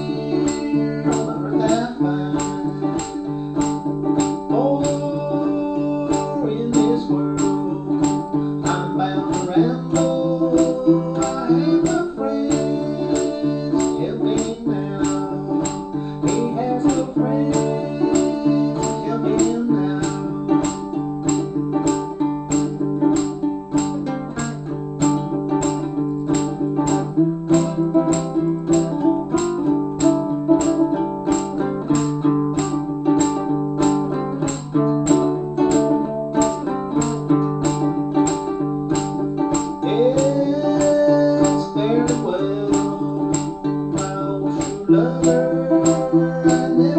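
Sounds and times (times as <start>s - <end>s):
ukulele strumming: 0.0s - 46.9s.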